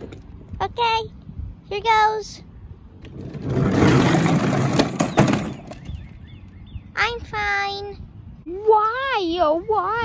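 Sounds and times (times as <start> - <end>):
plastic wheels rolling over asphalt: 3.0 - 6.0.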